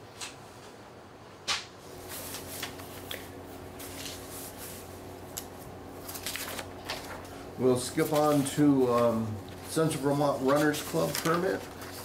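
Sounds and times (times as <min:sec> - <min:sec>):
low electrical hum: 0:00.0 - 0:12.0
papers rustling: 0:02.0 - 0:12.0.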